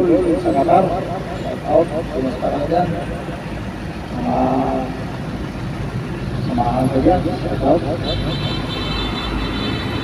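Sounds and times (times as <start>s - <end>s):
traffic and engine rumble: 0.0s - 10.0s.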